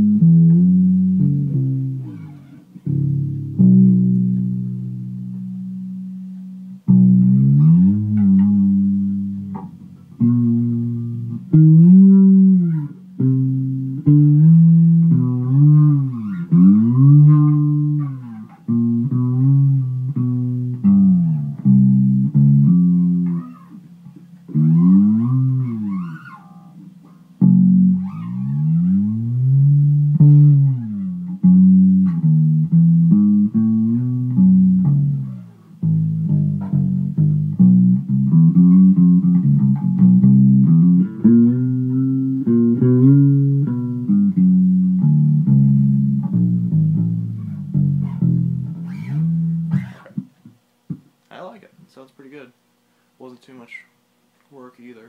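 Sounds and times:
fretless bass plucked notes: 0.0s - 51.6s.

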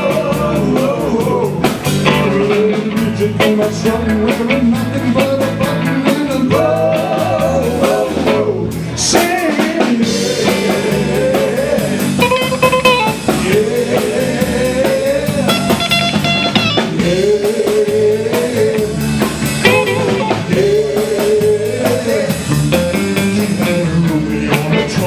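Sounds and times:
drum kit beat: 0.0s - 25.0s
electric guitar: 0.0s - 25.0s.

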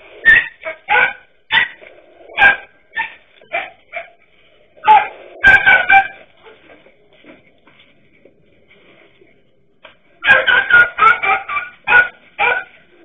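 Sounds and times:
small dogs barking sharply: 0.2s - 4.2s, 4.8s - 6.3s, 10.2s - 13.0s.

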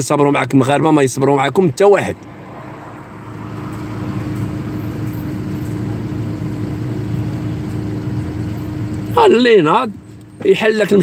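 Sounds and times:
traffic engines humming: 0.0s - 11.0s.

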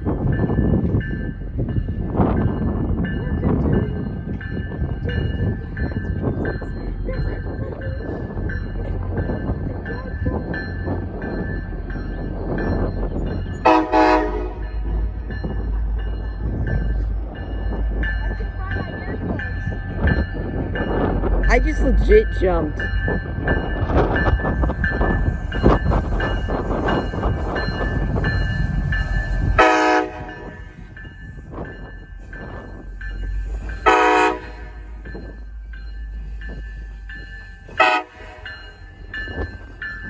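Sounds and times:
diesel locomotive engine rumble: 0.0s - 40.0s
train horn blast: 13.6s - 14.7s, 29.6s - 30.6s, 33.8s - 34.9s, 37.8s - 38.5s.

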